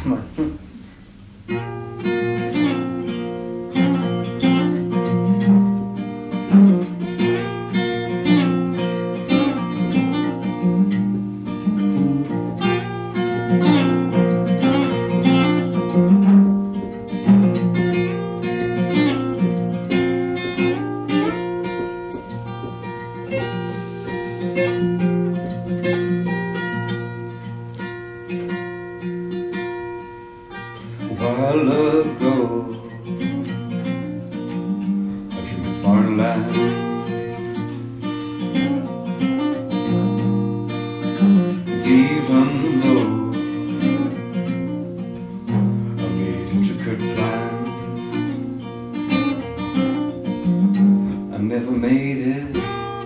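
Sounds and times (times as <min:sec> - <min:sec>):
solo acoustic guitar: 0:00.0 - 0:53.0.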